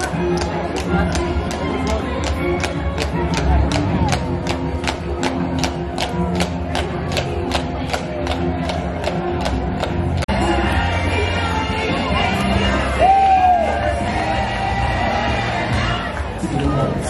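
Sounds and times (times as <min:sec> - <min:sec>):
crowd: 0:00.0 - 0:17.0
parade music: 0:00.0 - 0:17.0.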